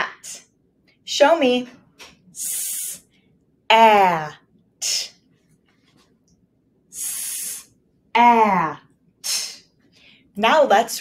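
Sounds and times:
woman hissing sss sound: 2.4s - 3.0s, 7.0s - 7.7s.

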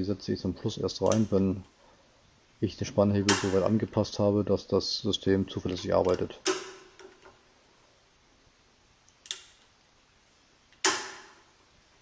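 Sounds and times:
air rifle lever clicking: 10.8s - 11.3s.

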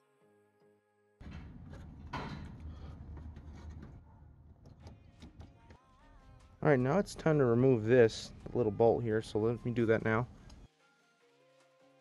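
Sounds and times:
close handling noise: 1.2s - 5.8s
soft background music: 4.7s - 12.0s.

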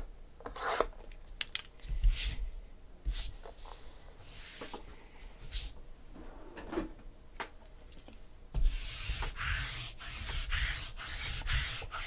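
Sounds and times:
lint roller rubbing on tabletop: 8.6s - 12.0s.

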